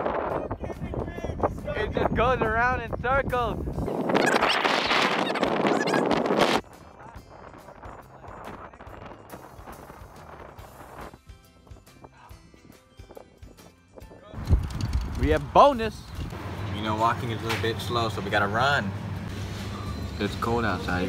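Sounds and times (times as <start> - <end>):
wind buffeting microphone: 0.0 - 11.9, 12.5 - 16.4.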